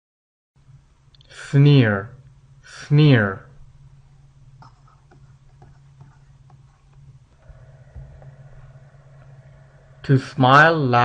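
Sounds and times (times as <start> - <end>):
low electrical hum: 0.6 - 11.0.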